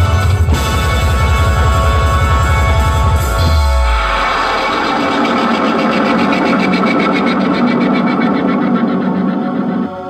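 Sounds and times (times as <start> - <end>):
loud band music over speakers: 0.0 - 6.2.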